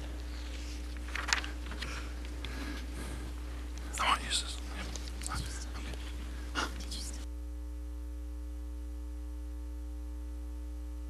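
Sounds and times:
rustling: 0:00.0 - 0:07.2
electrical mains hum: 0:00.0 - 0:11.0
faint whispering: 0:01.8 - 0:07.3.

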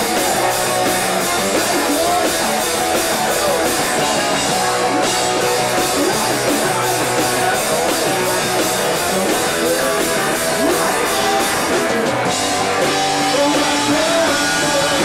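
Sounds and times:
distorted electric guitars: 0:00.0 - 0:15.0
drum kit with cymbal beat: 0:00.0 - 0:15.0
singer's vocals: 0:00.0 - 0:15.0.

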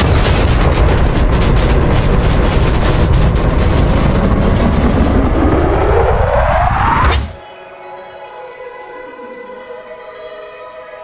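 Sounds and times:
deep rumbling rush: 0:00.0 - 0:07.4
rising whoosh: 0:03.2 - 0:07.4.

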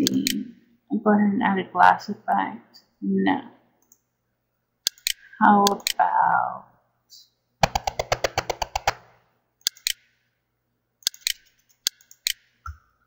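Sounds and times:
computer mouse clicks: 0:03.8 - 0:04.0, 0:04.9 - 0:06.0, 0:09.6 - 0:10.1, 0:11.0 - 0:12.8.

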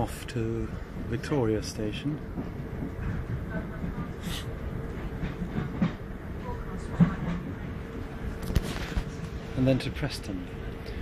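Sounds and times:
train rumbling: 0:00.0 - 0:11.0.

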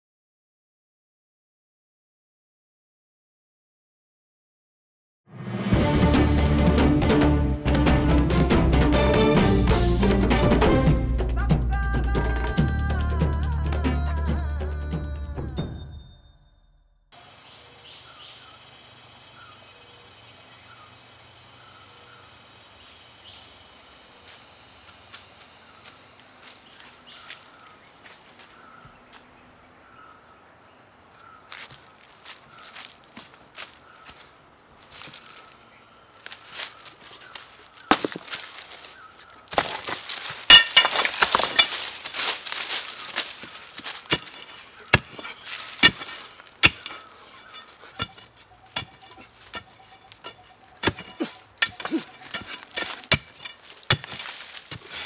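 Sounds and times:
bird chirping: 0:17.2 - 0:24.8, 0:25.6 - 0:33.0, 0:42.8 - 0:53.5
footsteps in dry leaves: 0:24.2 - 0:29.4, 0:30.5 - 0:55.0
rustling and scraping: 0:36.3 - 0:55.0.

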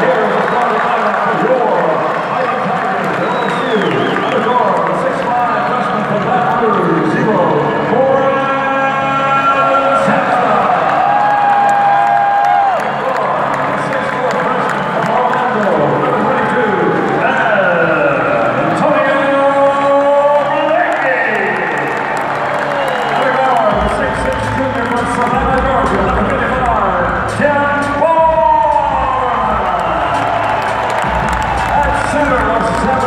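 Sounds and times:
crowd cheering and applauding: 0:00.0 - 0:33.0
echoing announcer calls over loudspeaker: 0:00.0 - 0:33.0.

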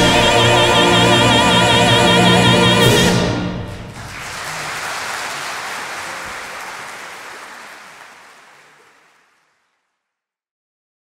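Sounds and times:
audience applause: 0:03.7 - 0:10.0.

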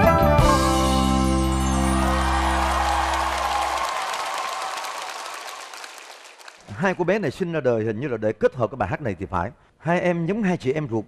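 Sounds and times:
audience applause: 0:01.6 - 0:06.8.

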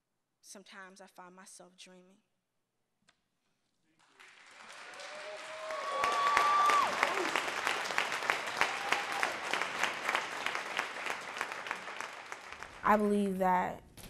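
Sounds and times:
audience applauding and cheering: 0:04.0 - 0:13.1
high whoop from one voice: 0:04.9 - 0:07.4, 0:08.6 - 0:09.4.

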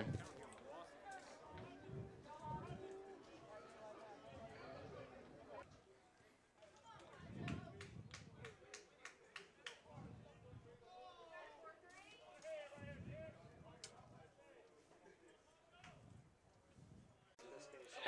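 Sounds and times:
faint distant voices: 0:00.0 - 0:18.0.

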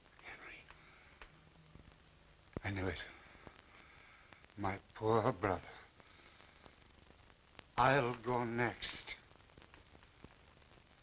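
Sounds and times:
faint low hum: 0:00.0 - 0:11.0
film soundtrack hiss: 0:00.0 - 0:11.0
faint clicks: 0:00.1 - 0:04.6, 0:09.2 - 0:10.9.

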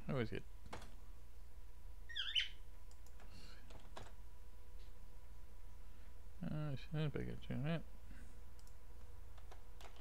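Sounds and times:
cockatiel chirping: 0:02.1 - 0:02.6.

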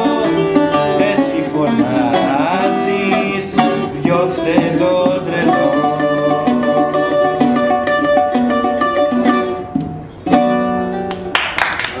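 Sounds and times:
bouzouki plucked notes: 0:00.0 - 0:11.3.

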